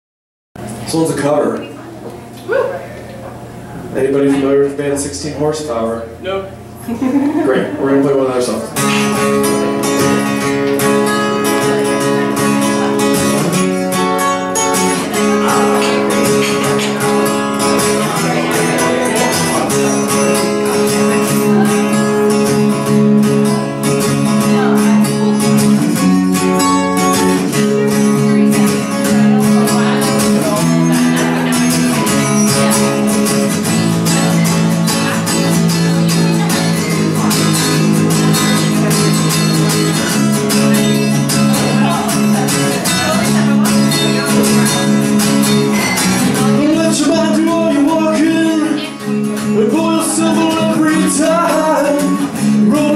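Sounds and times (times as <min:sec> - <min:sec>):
acoustic guitar strumming: 0:03.8 - 0:52.9
electric guitar: 0:08.6 - 0:52.9.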